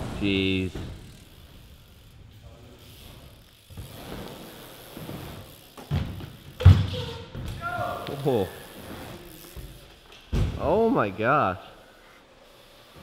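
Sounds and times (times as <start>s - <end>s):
bike rolling on ramps: 0.0s - 13.0s
bike freewheel hub ticking: 0.2s - 10.3s, 11.8s - 13.0s.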